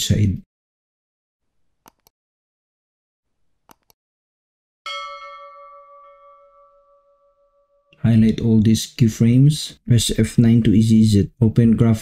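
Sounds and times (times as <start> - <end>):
notification bell ding: 4.9 - 7.9.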